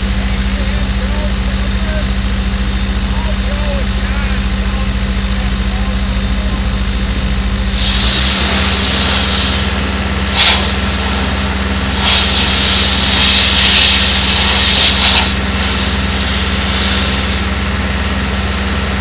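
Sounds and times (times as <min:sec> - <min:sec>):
low engine drone: 0:00.0 - 0:19.0
air blow gun hissing: 0:07.6 - 0:17.8.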